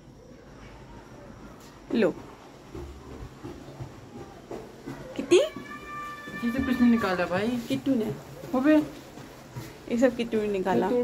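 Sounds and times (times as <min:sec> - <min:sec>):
cat meowing: 0:05.5 - 0:07.2.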